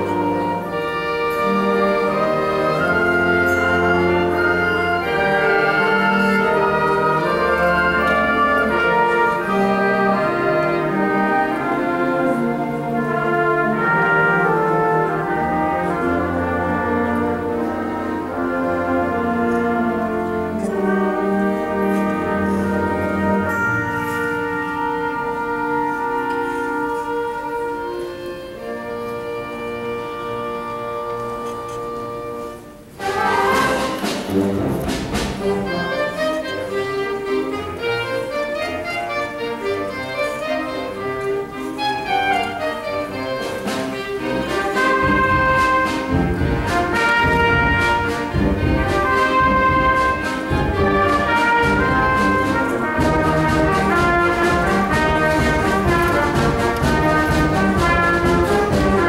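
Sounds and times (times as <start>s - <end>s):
concert band playing: 0.0s - 59.0s.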